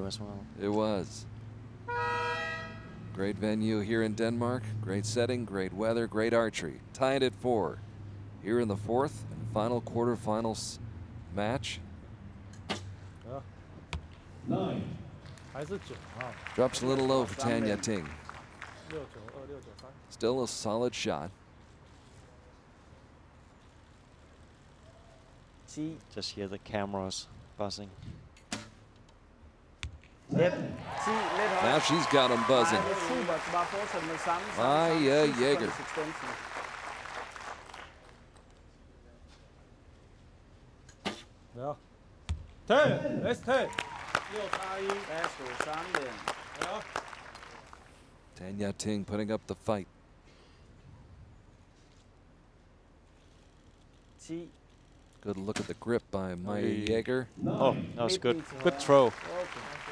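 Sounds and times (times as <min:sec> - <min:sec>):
arrow hitting target: 0:12.6 - 0:13.0, 0:28.4 - 0:28.8, 0:41.0 - 0:41.4.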